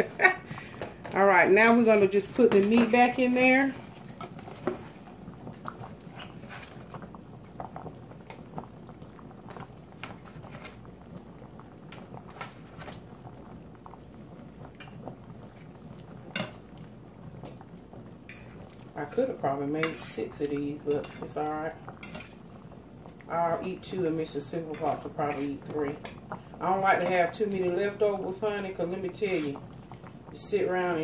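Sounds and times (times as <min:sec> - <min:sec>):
gravy bubbling: 0:00.0 - 0:31.0.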